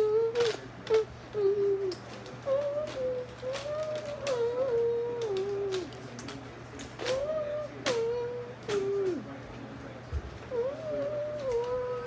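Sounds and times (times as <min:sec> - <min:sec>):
person humming: 0:00.0 - 0:06.0, 0:07.0 - 0:09.3, 0:10.5 - 0:12.0.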